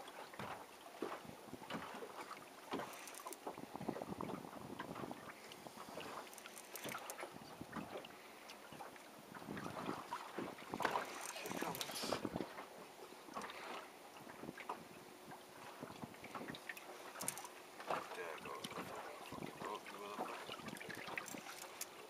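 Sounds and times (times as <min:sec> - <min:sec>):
water splashing against boat hull: 0:00.0 - 0:22.0
wind on microphone: 0:03.6 - 0:06.0, 0:11.6 - 0:12.5.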